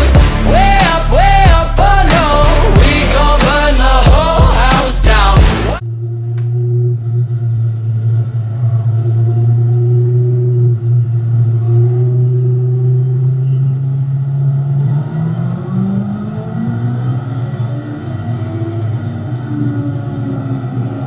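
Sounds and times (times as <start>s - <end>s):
race car engine: 0.0s - 21.0s.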